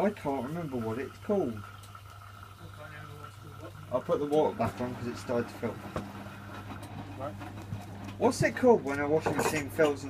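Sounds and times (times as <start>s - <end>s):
washing machine humming: 0.0s - 10.0s.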